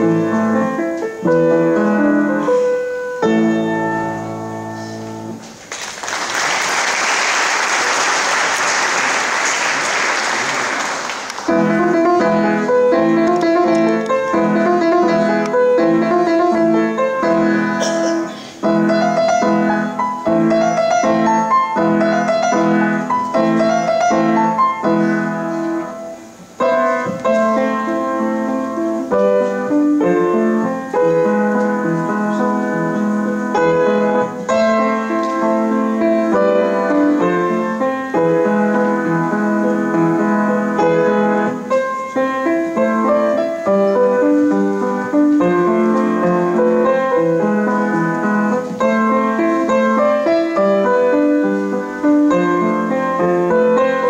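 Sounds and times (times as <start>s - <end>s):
lively piano piece: 0.0s - 54.0s
applause: 5.6s - 11.5s.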